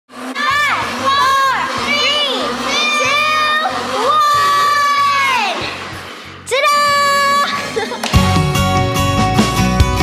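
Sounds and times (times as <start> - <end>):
upbeat music with pulsing bass: 7.4 - 10.0.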